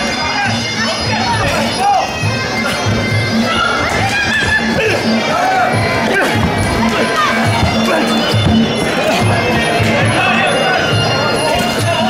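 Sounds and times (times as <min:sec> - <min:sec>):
reed pipe melody: 0:00.0 - 0:12.0
steady drum beat: 0:04.6 - 0:12.0.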